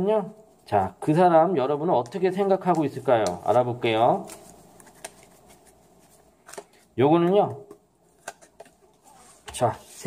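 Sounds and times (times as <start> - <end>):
cards snapping: 4.2 - 5.6.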